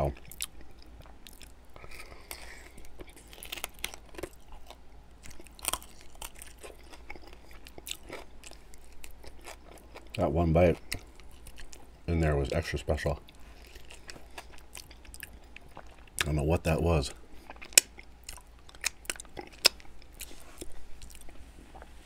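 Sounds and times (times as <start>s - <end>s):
chewing chicken wings: 0.0s - 11.9s, 13.2s - 16.8s, 17.4s - 21.9s.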